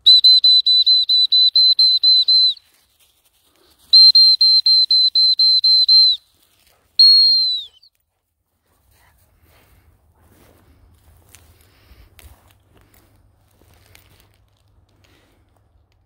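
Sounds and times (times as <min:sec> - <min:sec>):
dog whistle pips: 0:00.0 - 0:02.7, 0:03.9 - 0:06.3, 0:07.0 - 0:07.9
long dog whistle blast: 0:00.0 - 0:02.7, 0:03.9 - 0:06.2, 0:07.0 - 0:07.9.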